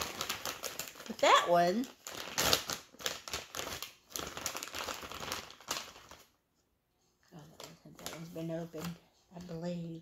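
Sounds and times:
packaging crinkling and rustling: 0.0 - 6.4.

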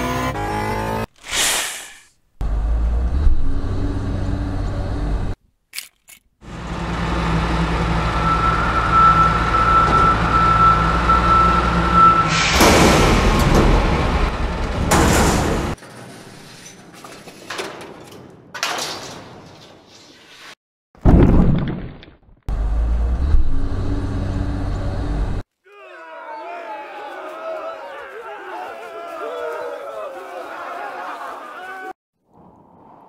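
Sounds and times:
truck engine rumble: 2.4 - 5.4, 6.4 - 16.9, 22.5 - 25.4.

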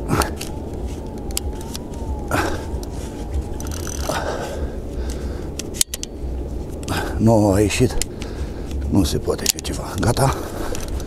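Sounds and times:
low steady rumble: 0.0 - 11.0
fishing rod clicks and knocks: 0.2 - 2.0, 2.8 - 4.2, 5.0 - 6.9, 8.0 - 11.0.

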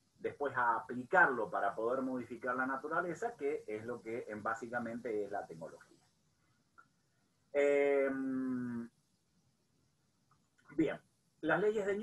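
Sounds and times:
man hesitating ehh: 7.6 - 8.9.

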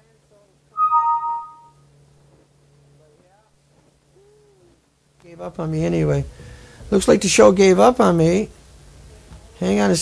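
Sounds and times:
two-note doorbell chime: 0.8 - 1.8.

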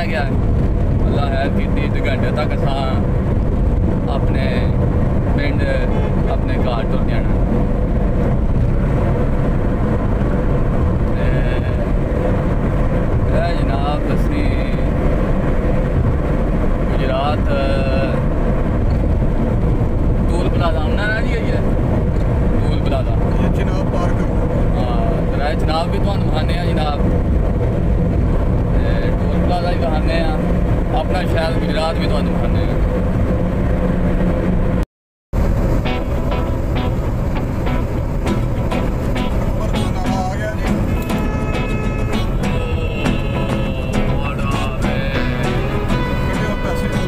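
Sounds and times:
voices: 0.0 - 0.4, 1.0 - 3.1, 4.0 - 4.8, 5.4 - 7.4, 11.1 - 12.0, 13.2 - 15.1, 20.3 - 21.7, 22.6 - 27.0, 28.8 - 32.8, 37.6 - 47.0
car cabin road rumble: 0.0 - 34.8, 35.4 - 47.0.

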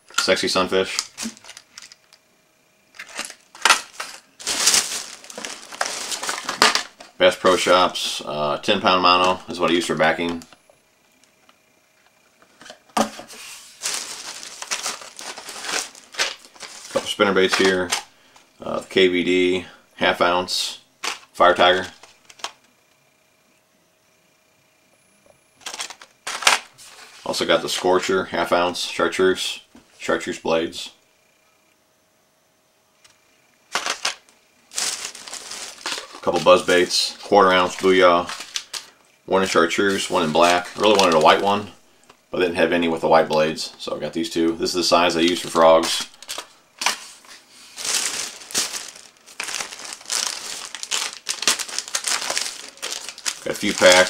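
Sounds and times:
plastic packaging crackling: 0.2 - 2.2, 2.9 - 7.6, 13.6 - 18.2, 21.0 - 22.6, 25.6 - 27.4, 33.7 - 39.0, 39.9 - 42.2, 45.2 - 54.0
plastic bag crinkling: 0.9 - 2.1, 3.0 - 7.6, 13.6 - 18.1, 25.6 - 27.4, 33.7 - 38.9, 39.9 - 41.6, 45.2 - 54.0.

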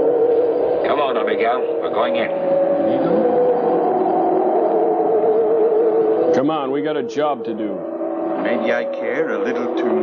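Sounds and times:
electronic drone of held tones: 0.0 - 10.0.

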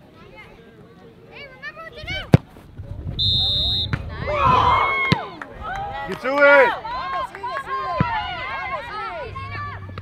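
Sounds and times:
referee's whistle blast: 3.2 - 4.0.

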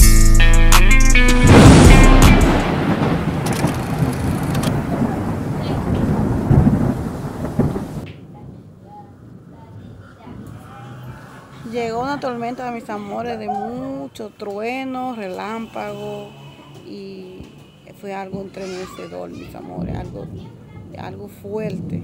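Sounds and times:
thunder clap and rumble: 1.4 - 12.8, 19.5 - 22.0.

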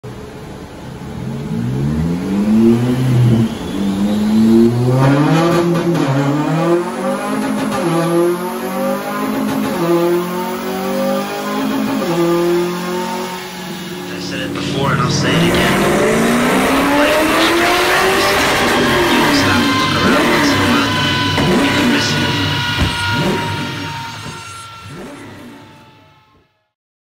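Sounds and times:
car engine accelerating through gears: 0.1 - 26.4.

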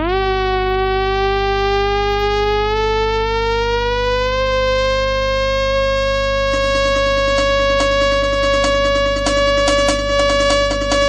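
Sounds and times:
low bass drone: 0.0 - 11.0
sustained synthesizer note: 0.0 - 11.0.

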